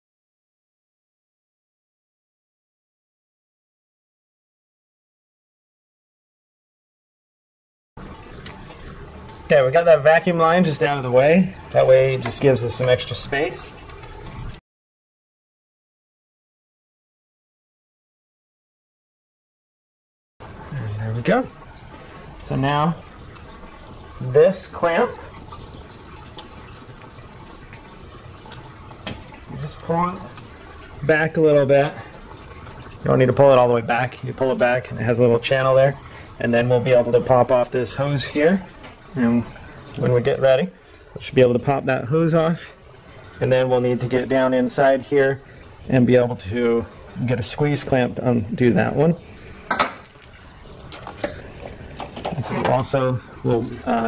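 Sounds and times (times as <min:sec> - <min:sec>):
coolant trickling into container: 0:08.0 - 0:14.6, 0:20.4 - 0:54.0.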